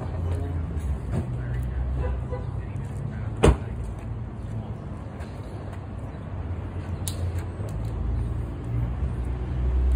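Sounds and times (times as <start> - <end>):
traffic rumble: 0.0 - 9.9.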